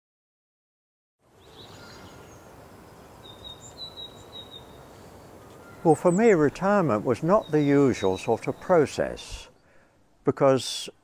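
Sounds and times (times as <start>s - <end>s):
small birds chirping: 1.3s - 9.9s
thin high whistling call: 3.2s - 8.3s.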